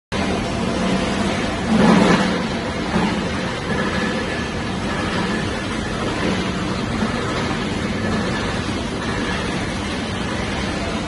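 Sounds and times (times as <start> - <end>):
tape manufacturing machine running: 0.1 - 11.0.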